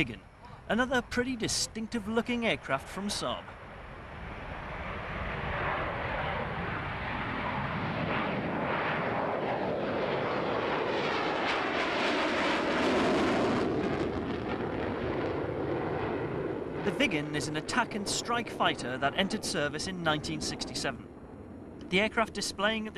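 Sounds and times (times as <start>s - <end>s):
jet engine roar: 0.0s - 22.9s.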